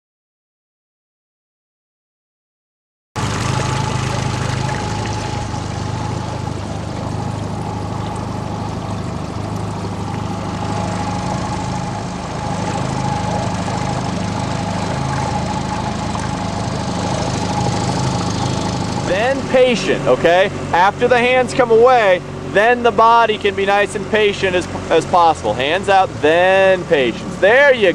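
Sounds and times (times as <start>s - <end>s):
boat engine running: 3.2s - 27.9s
water splashing along hull: 3.2s - 27.9s.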